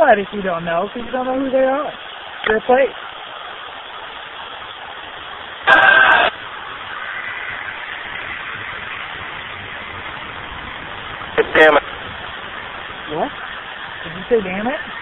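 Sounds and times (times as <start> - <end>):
radio static hiss: 0.0 - 15.0
loud steady tone: 5.6 - 9.2, 11.2 - 12.0.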